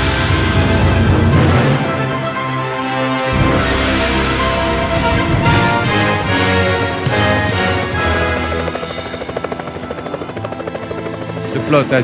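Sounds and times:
helicopter rotor chop: 0.0s - 12.0s
orchestral music: 0.0s - 12.0s.

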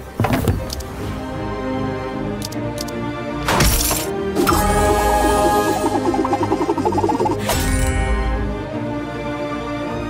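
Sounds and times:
looping game music: 4.2s - 9.6s.

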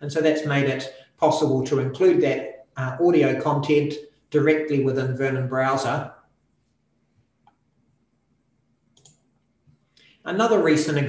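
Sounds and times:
computer mouse click: 8.9s - 9.3s.

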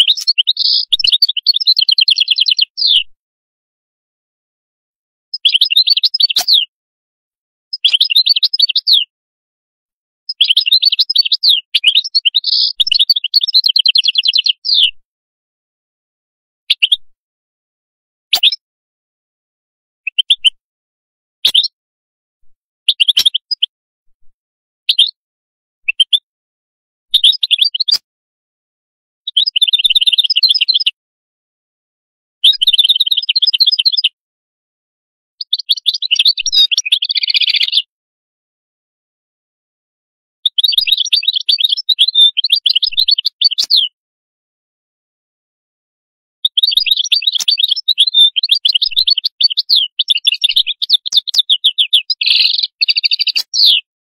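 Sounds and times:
goldfinch twittering song: 0.0s - 3.1s, 5.3s - 6.7s, 7.7s - 9.1s, 10.3s - 15.0s, 16.7s - 17.0s, 18.3s - 18.6s, 21.4s - 21.8s, 22.9s - 23.7s, 24.9s - 25.2s, 27.1s - 28.0s, 29.3s - 31.0s, 32.4s - 34.2s, 35.4s - 37.9s, 40.5s - 44.0s, 46.4s - 53.9s.

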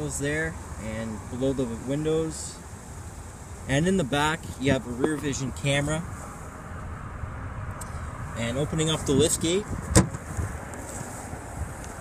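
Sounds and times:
wind noise on microphone: 7.2s - 12.0s.

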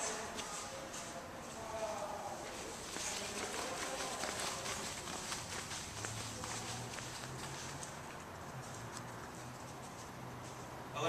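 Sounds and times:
person walking: 0.0s - 10.9s.

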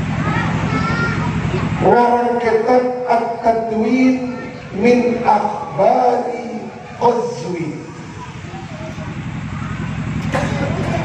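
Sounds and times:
engine running with pulsing throb: 0.0s - 11.0s.

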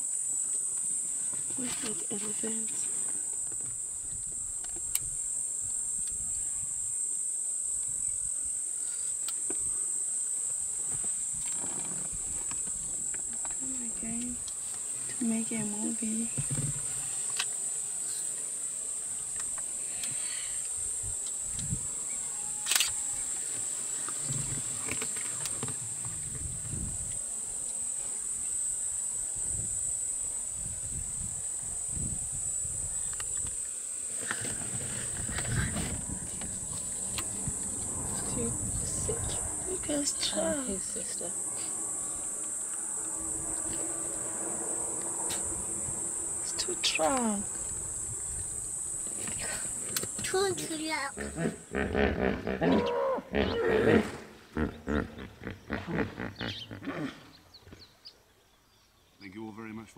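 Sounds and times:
insects droning: 0.0s - 59.9s.

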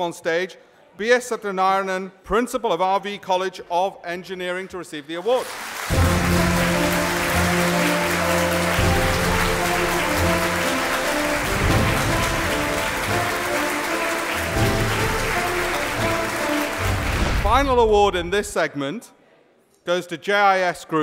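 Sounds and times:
audience applauding: 5.3s - 18.3s
music with held notes: 5.9s - 17.3s.

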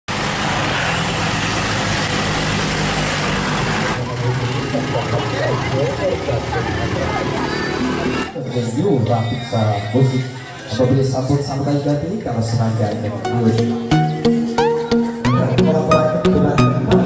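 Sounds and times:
engine humming: 0.1s - 8.4s
road noise: 0.1s - 17.0s
voices: 3.8s - 17.0s.

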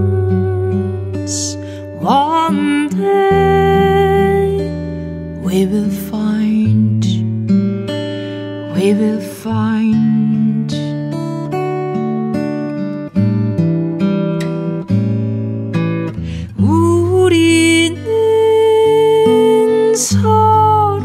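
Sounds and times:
woman singing with vibrato: 0.0s - 4.7s, 5.4s - 7.3s, 8.7s - 10.9s, 16.6s - 21.0s
acoustic guitar fingerpicked: 0.0s - 21.0s.

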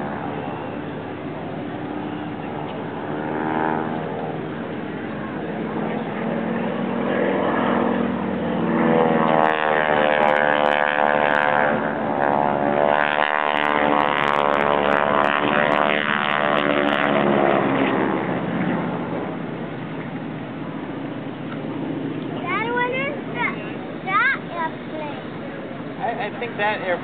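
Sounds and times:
propeller airplane engine passing: 0.0s - 27.0s.

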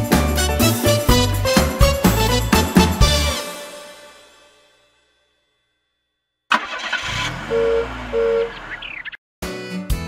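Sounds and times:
cartoon car engine starting: 6.5s - 9.2s.

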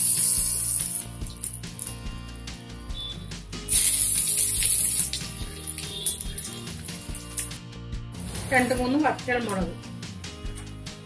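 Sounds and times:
hot oil sizzling: 0.0s - 2.0s, 3.6s - 7.6s
background music: 0.0s - 11.0s.

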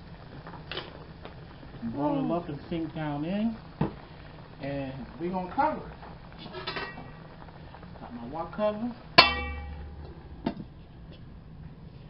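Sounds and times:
metal lid clanging on wok: 6.4s - 7.1s, 9.2s - 10.0s.

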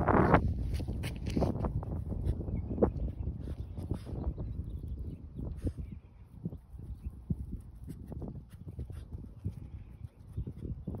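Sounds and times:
dog sniffing: 6.8s - 10.8s.

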